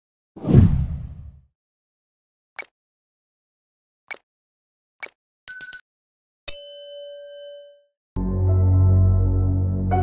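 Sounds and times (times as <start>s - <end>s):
deep whoosh: 0.4s - 1.4s.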